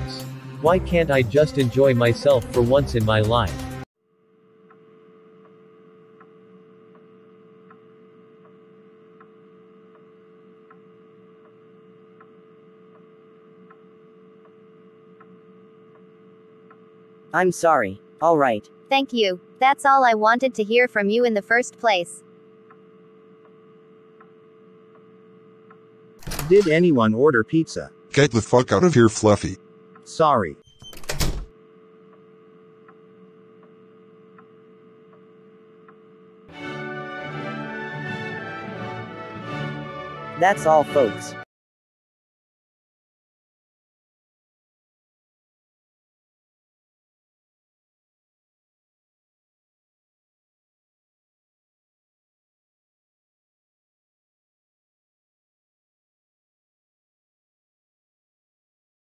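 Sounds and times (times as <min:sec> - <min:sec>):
music: 0:00.0 - 0:03.9, 0:36.5 - 0:41.4
faint steady hum: 0:04.1 - 0:36.5
faint ticks: 0:09.2 - 0:11.6
door slamming shut: 0:26.2 - 0:26.8, 0:30.8 - 0:31.5.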